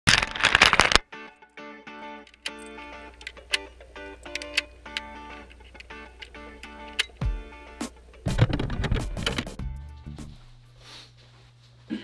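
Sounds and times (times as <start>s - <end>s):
plucked guitar intro music: 1.0s - 10.6s.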